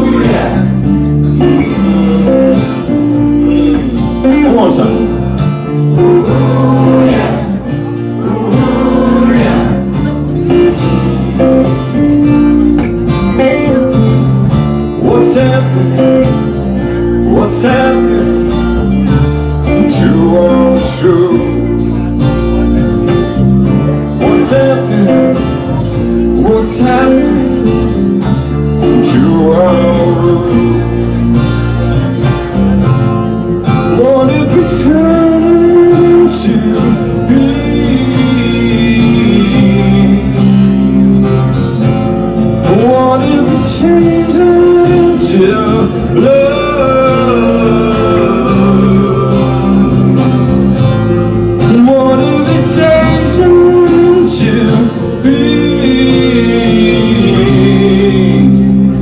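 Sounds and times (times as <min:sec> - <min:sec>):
man singing: 0:00.0 - 0:12.8, 0:13.4 - 0:59.0
electric bass: 0:00.0 - 0:59.0
strummed acoustic guitar: 0:00.0 - 0:59.0.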